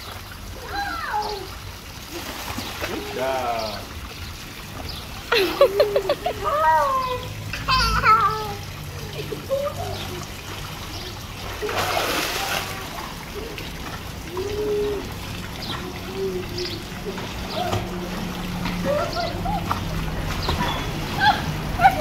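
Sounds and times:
water jet trickling into pool: 0:00.0 - 0:22.0
water splashing in pool: 0:00.0 - 0:22.0.

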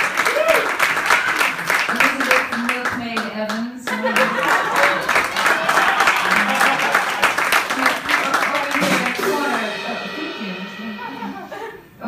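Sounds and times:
hands clapping: 0:00.0 - 0:09.6
live band playing softly: 0:06.1 - 0:12.0.

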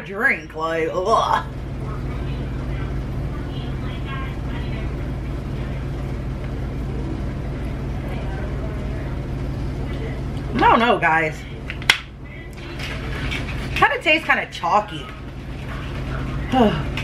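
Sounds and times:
steady low hum: 0:00.0 - 0:17.0
faint voices: 0:00.7 - 0:17.0.

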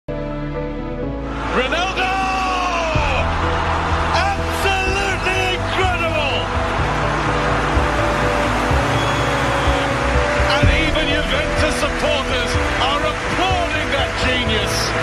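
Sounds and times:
music: 0:00.0 - 0:15.0
stadium crowd noise: 0:01.1 - 0:15.0.

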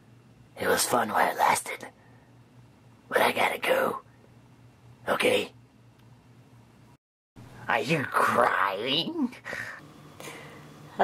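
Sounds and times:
person whispering: 0:00.6 - 0:02.0, 0:03.1 - 0:04.0.

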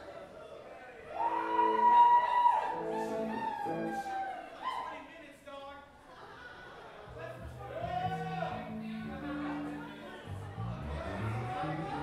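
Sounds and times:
bar chatter: 0:00.0 - 0:12.0
band instruments with pitch slides: 0:01.2 - 0:04.3, 0:07.1 - 0:12.0.

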